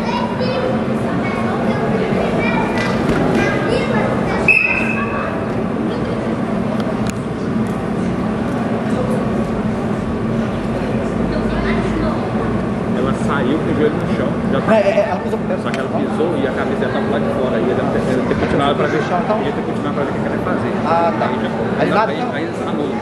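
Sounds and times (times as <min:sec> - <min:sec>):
spectators chattering: 0:00.0 - 0:23.0.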